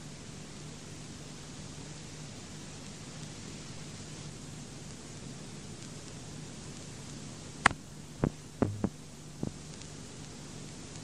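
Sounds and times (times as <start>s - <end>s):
steady low hum: 0.0s - 11.0s
short sharp knocks: 8.2s - 8.9s.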